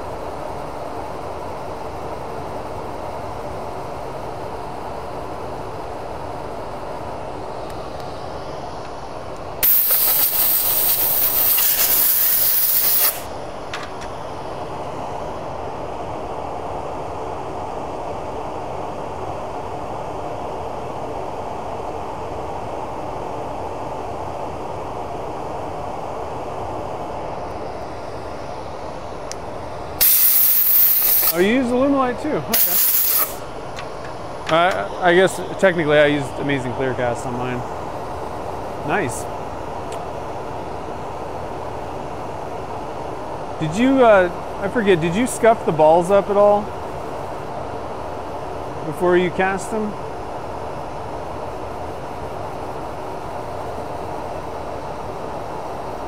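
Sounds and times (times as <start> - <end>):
steady machine hum: 0.0 - 56.0
air blow gun hissing: 9.6 - 13.4, 30.0 - 33.5.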